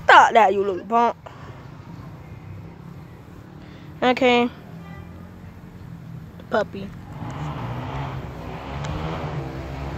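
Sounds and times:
engine humming and rushing: 0.9s - 9.9s.

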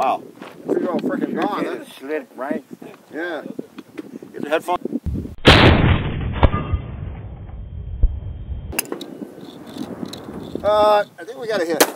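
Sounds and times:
rifle shot echoing: 5.4s - 7.2s
sharp crack: 5.4s - 10.4s, 11.7s - 11.9s.

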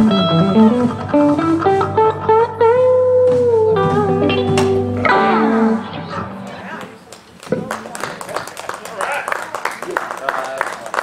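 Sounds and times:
song ending: 0.0s - 6.4s
handclaps: 6.8s - 11.0s.

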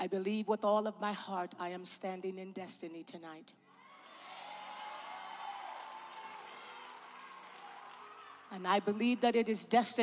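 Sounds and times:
congregation cheering and calling out: 3.8s - 8.5s.

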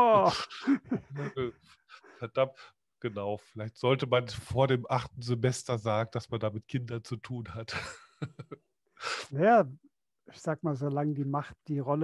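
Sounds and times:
men laughing: 0.0s - 2.1s, 7.7s - 8.7s.

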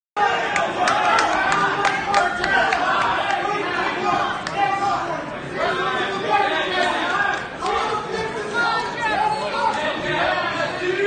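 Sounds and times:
crowd talking and shouting: 0.2s - 11.0s.

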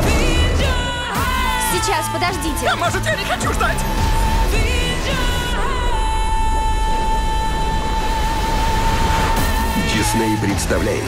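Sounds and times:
deep rumbling drone: 3.8s - 10.0s.

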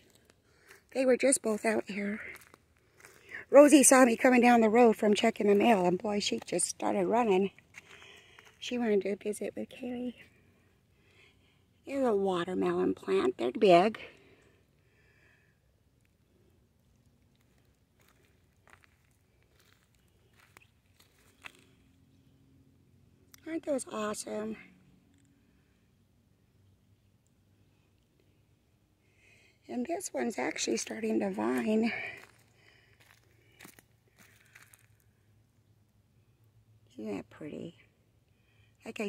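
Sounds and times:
faint crunches: 2.2s - 3.4s, 7.5s - 8.7s, 16.0s - 21.8s, 31.5s - 35.2s.

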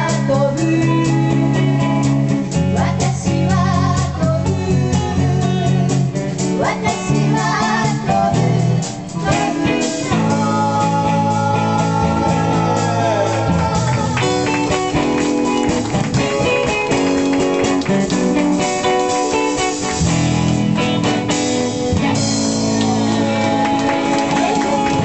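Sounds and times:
drum kit: 0.0s - 25.0s
electric guitar: 0.0s - 25.0s.

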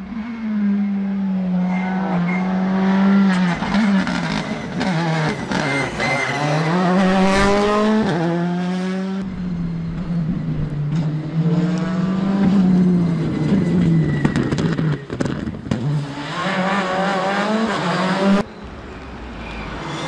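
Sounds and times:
rally car engine revving: 0.0s - 18.5s.

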